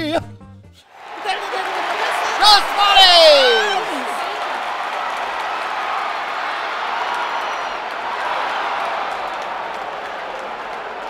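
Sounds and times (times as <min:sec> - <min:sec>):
crowd talking and calling: 0:00.9 - 0:11.0.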